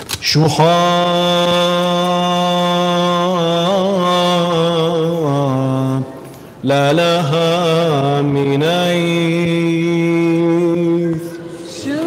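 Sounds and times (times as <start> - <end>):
man singing a chant: 0.3 - 12.0.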